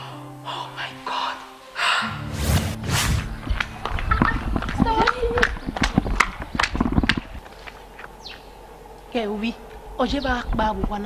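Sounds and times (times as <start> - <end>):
running footsteps on brick paving: 3.4 - 8.1.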